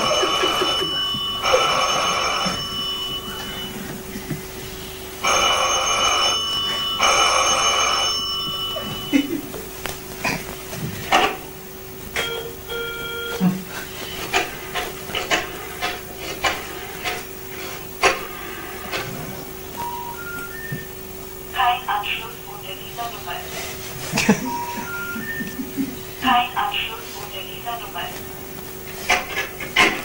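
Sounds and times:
telephone ringing: 0:00.0 - 0:03.9, 0:05.2 - 0:09.3, 0:12.2 - 0:13.4, 0:24.4 - 0:25.6.

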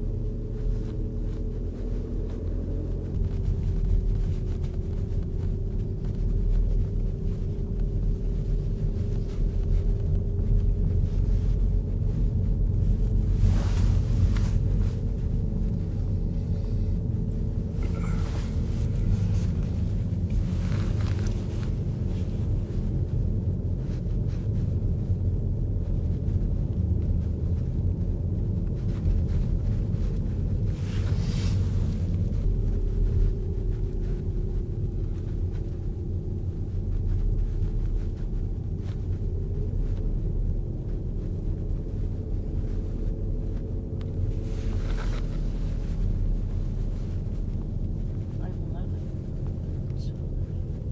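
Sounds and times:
car driving on unpaved road: 0:00.0 - 0:50.9.

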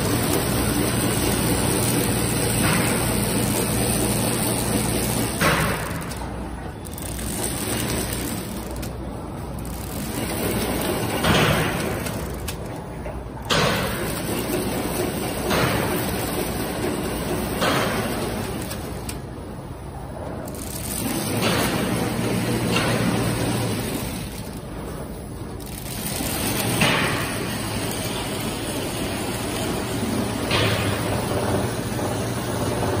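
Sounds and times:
packing machine running: 0:00.0 - 0:33.0.

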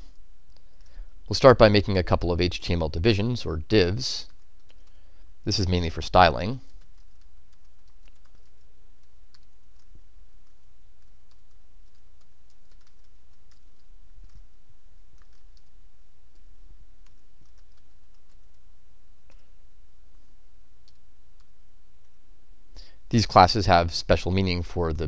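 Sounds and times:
keyboard typing: 0:04.3 - 0:05.0, 0:06.6 - 0:18.7, 0:20.8 - 0:21.5.

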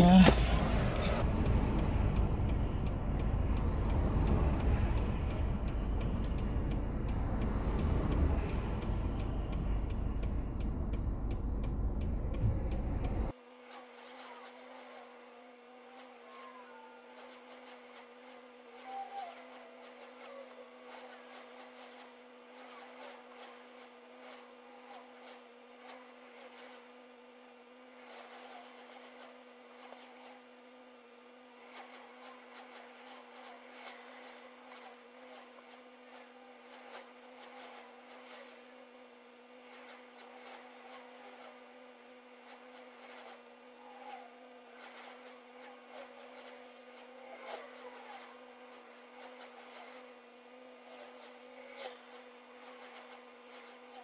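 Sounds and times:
faint irregular sounds: 0:00.0 - 0:54.0.

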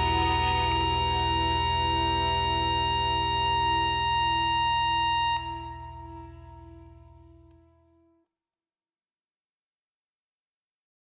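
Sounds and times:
folk-punk song chord ringing: 0:00.0 - 0:08.0.

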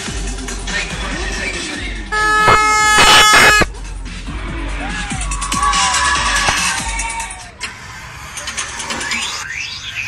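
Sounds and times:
vehicle horn blowing: 0:02.1 - 0:03.7.

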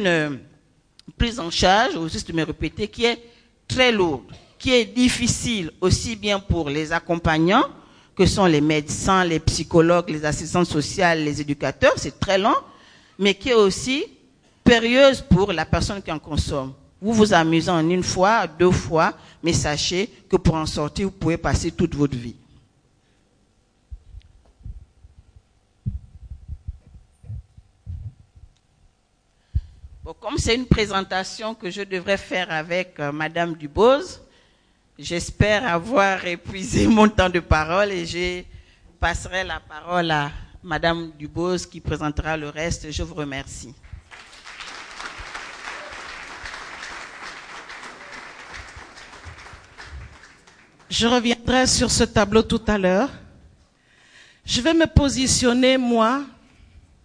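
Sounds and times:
microphone handling thumps: 0:23.9 - 0:28.6, 0:29.6 - 0:30.1
audience applauding: 0:44.0 - 0:50.9.

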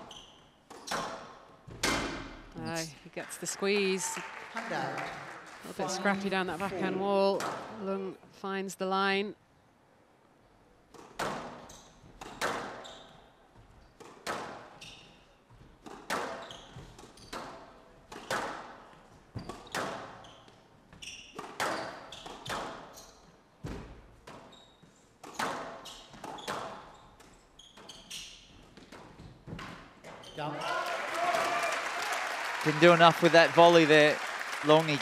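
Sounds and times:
squash ball hits echoing: 0:00.8 - 0:02.5.

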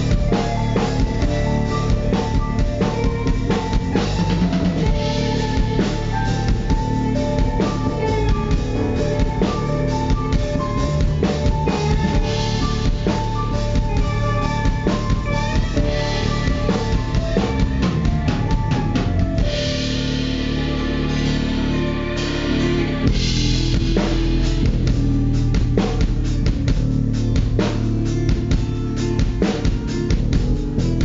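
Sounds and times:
drum kit beat: 0:00.0 - 0:31.0
electric guitars: 0:00.0 - 0:31.0.

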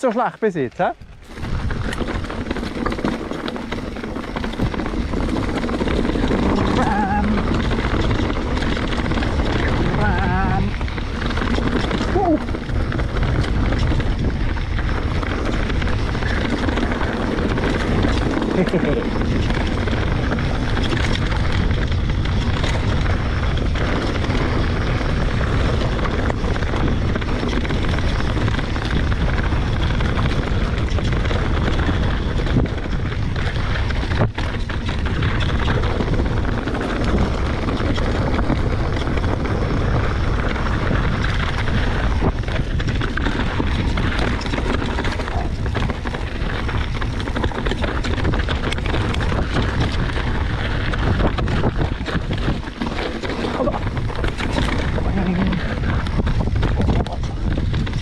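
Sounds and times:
bike tyres rolling over rocky trail: 0:00.0 - 0:58.0
wind buffeting microphone: 0:00.0 - 0:58.0.

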